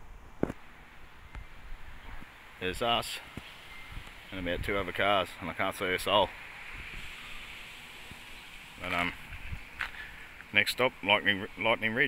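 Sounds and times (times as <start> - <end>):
soft steady hiss: 0.0 - 12.0.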